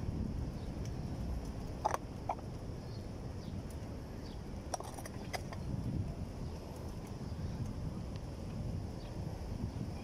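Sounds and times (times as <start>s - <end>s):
bike tyres rumbling on paving: 0.0s - 10.0s
wind on microphone: 0.0s - 10.0s.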